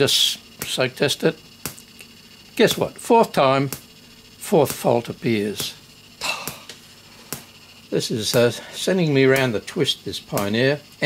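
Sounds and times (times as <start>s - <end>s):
sharp clicks: 1.6s - 8.6s, 9.2s - 11.0s.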